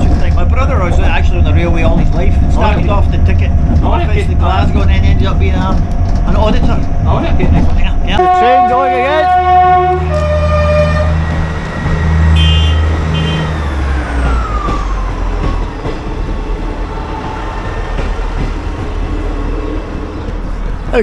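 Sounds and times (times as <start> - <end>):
train engine drone: 0.0 - 21.0
wheels rumbling on rails: 0.0 - 21.0
train whine falling in pitch: 8.2 - 18.9.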